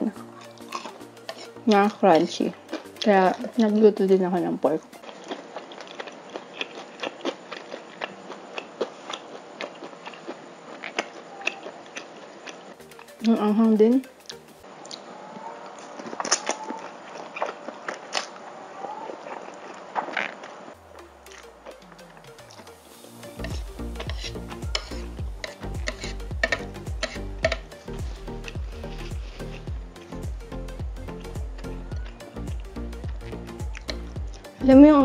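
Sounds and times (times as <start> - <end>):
steady music beat: 0.0 - 5.0, 12.8 - 14.6, 20.8 - 35.0
noodles slurped and chewed: 5.0 - 12.8.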